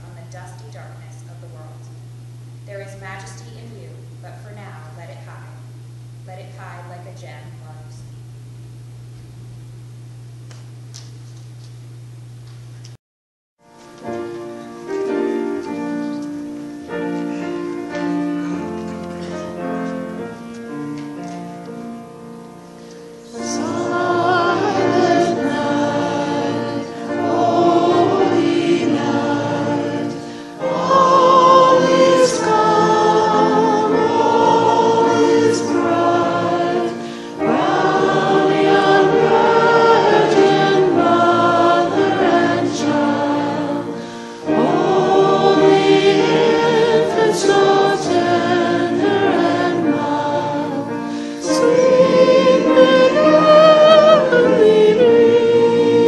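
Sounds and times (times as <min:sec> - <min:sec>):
choir singing: 0:14.8 - 0:20.4, 0:23.2 - 0:56.0.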